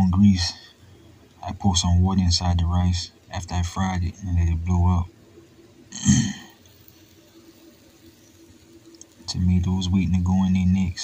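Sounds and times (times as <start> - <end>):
faint steady hum: 0.0 - 11.0
loud burp: 5.9 - 6.6.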